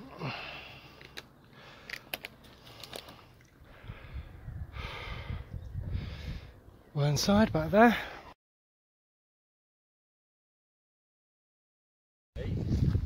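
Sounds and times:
person breathing hard: 0:00.0 - 0:06.6
wind rumbling on microphone: 0:03.6 - 0:07.8, 0:12.4 - 0:13.0.

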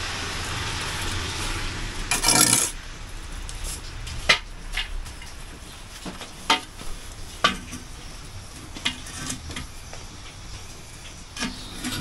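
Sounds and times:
metal gazebo frame clicking and rattling: 0:03.6 - 0:12.0.

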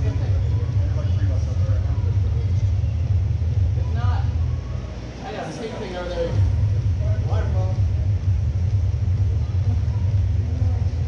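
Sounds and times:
faint distant voices: 0:00.0 - 0:11.0
steady low rumble: 0:00.0 - 0:11.0.

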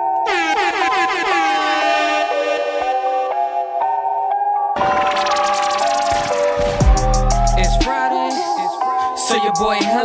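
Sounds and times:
air horn swooping blasts: 0:00.2 - 0:03.6
bell-like music with beat: 0:05.6 - 0:10.0.

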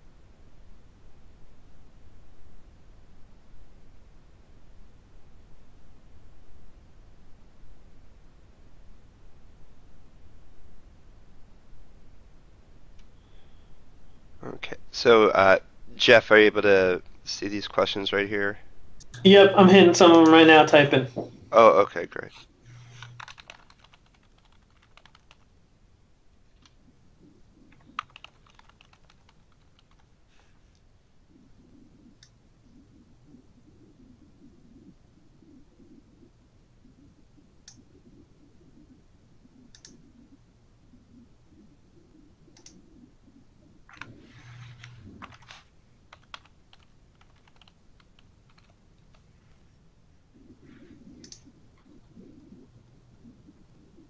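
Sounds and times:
faint keyboard typing: 0:22.2 - 0:25.6, 0:26.4 - 0:36.3, 0:36.9 - 0:40.4, 0:41.1 - 0:49.8, 0:50.4 - 0:54.0
typing on computer keyboard: 0:22.8 - 0:25.4, 0:27.7 - 0:30.1, 0:43.9 - 0:49.2.

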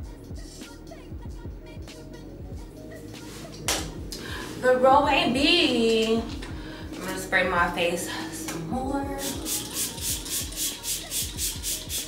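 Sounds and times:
spray bottle pump hisses: 0:09.2 - 0:12.0.

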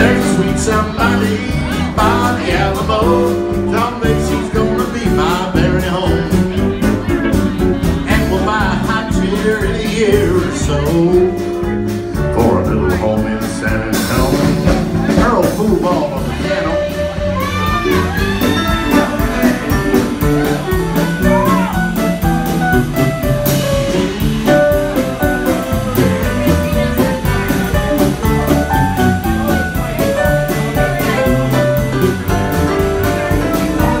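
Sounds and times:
bass guitar: 0:00.0 - 0:34.0
drums: 0:00.0 - 0:34.0.

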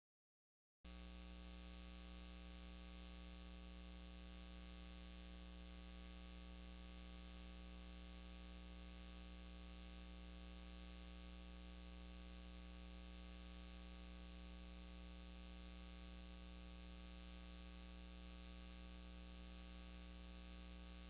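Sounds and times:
faint electrical hum with hiss: 0:00.9 - 0:21.0.

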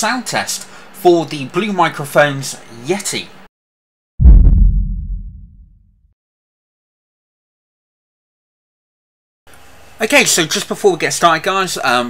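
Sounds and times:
deep bass boom: 0:04.2 - 0:05.9.

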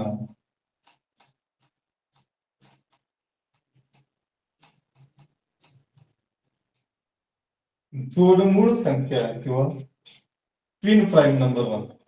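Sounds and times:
marker scratching on whiteboard: 0:00.3 - 0:07.0, 0:09.1 - 0:10.4.

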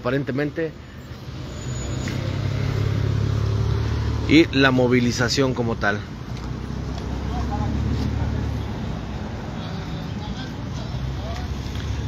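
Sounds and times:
car driving past: 0:01.3 - 0:04.5.

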